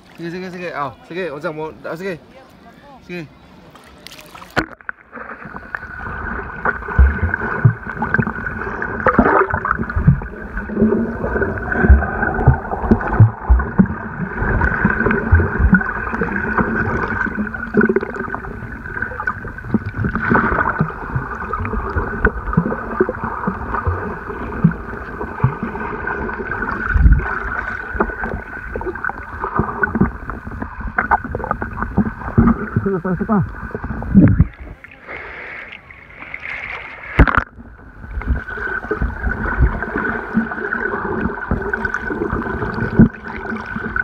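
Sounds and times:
muffled underwater water movement: 3.4s - 44.0s.

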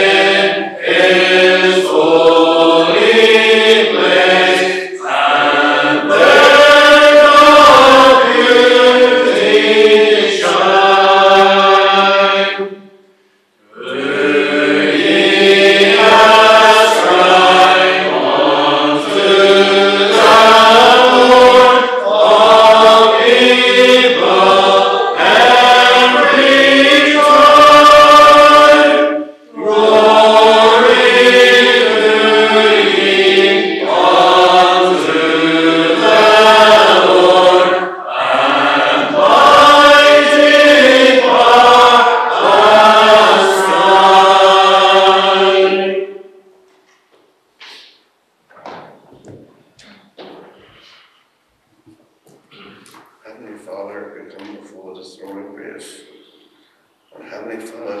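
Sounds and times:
congregation singing unaccompanied: 0.0s - 46.7s, 52.5s - 58.0s.

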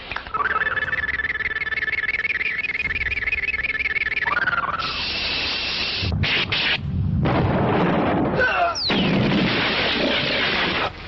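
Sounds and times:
high warbling electronic tone: 0.3s - 6.8s
steady hiss: 4.6s - 7.0s.

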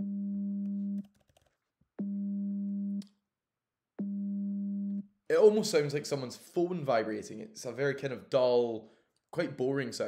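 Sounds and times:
pulsing sine tone hum: 0.0s - 1.0s, 2.0s - 3.0s, 4.0s - 5.0s.

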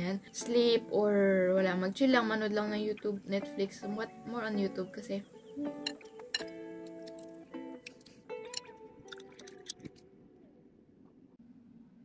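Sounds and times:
background music with held notes: 0.0s - 10.7s.

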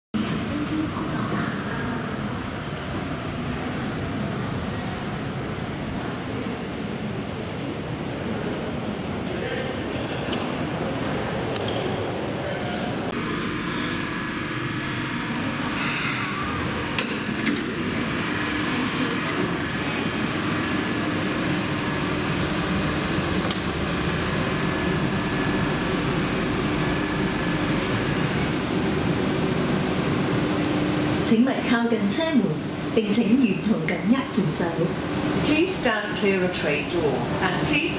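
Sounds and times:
shuttle train ventilation hum: 0.2s - 37.9s.

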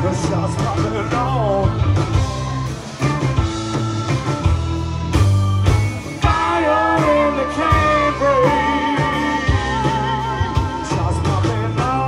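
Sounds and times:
blues-rock band playing: 0.0s - 12.0s.

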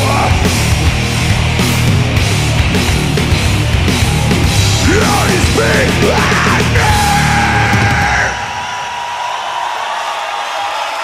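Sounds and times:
heavy metal band final chord: 0.0s - 8.4s.

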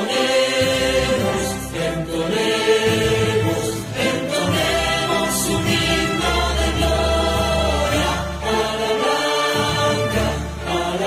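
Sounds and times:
chorus singing: 0.0s - 11.0s.

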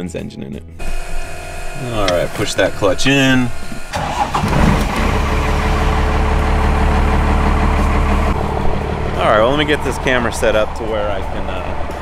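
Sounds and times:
diesel engine starting and idling: 0.8s - 12.0s.

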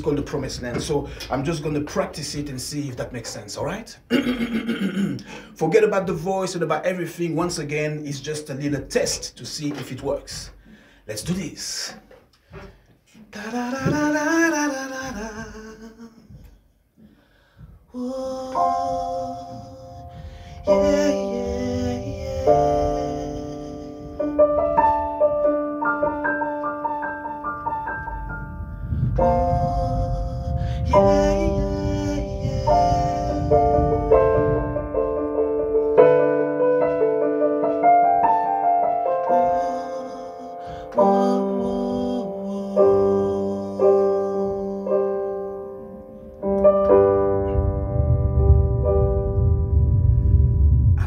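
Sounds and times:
man singing long wordless note: 13.2s - 16.5s, 17.9s - 24.5s, 29.0s - 34.8s, 39.0s - 46.0s
electronic keyboard piano chords: 18.6s - 51.0s.

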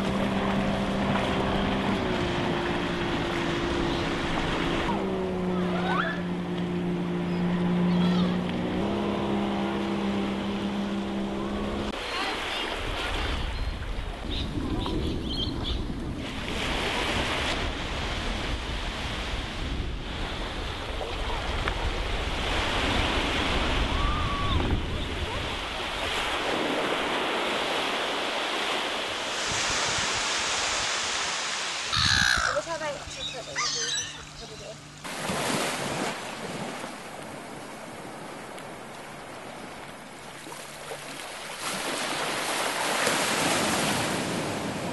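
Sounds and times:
surf washing onto beach: 0.0s - 6.9s, 15.9s - 32.9s, 35.0s - 44.9s
wind rumbling on microphone: 0.0s - 28.0s, 29.0s - 33.4s
short calls: 31.9s - 34.8s.

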